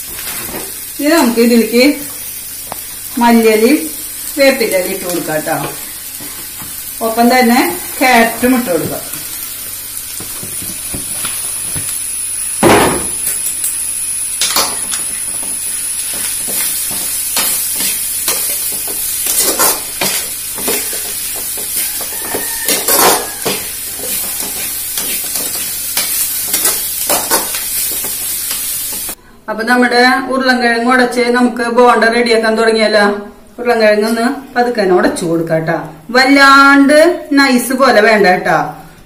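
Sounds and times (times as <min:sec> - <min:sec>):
vegetables frying in a pan: 0:00.0 - 0:29.2
metal spatula scraping a pan: 0:16.2 - 0:27.6.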